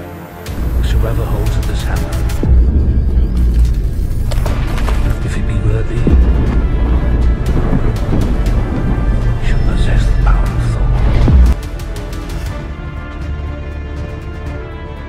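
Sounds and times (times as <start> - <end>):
dramatic trailer music: 0.0 - 15.0
deep booming rumble: 0.5 - 12.0.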